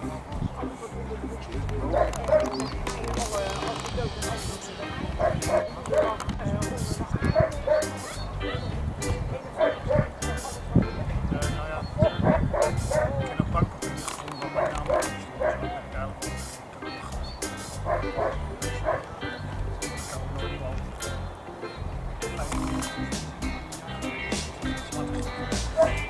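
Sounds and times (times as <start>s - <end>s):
background music: 0.0s - 26.0s
dog barking: 1.9s - 2.6s, 5.2s - 6.2s, 7.3s - 8.7s, 9.6s - 10.2s, 12.0s - 13.2s, 14.5s - 15.8s, 17.8s - 19.1s, 25.8s - 26.0s.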